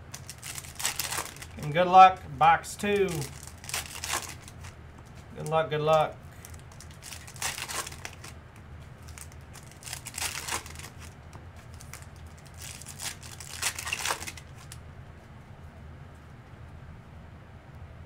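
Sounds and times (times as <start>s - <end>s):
foil wrappers tearing and crinkling: 0.0s - 1.8s, 2.8s - 8.4s, 9.0s - 14.8s.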